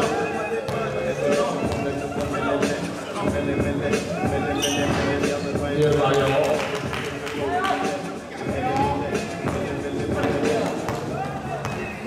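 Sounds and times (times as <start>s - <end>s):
people calling out: 3.9s - 5.6s.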